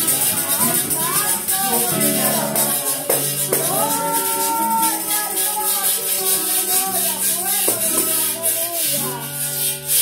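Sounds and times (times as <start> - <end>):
plucked string instrument chords: 0.0 - 10.0
shaker beat: 0.0 - 10.0.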